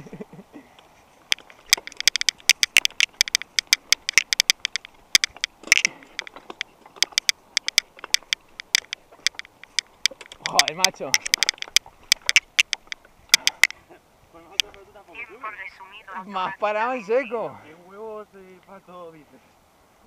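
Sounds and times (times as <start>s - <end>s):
mountain bike clattering over stones: 1.2s - 13.7s.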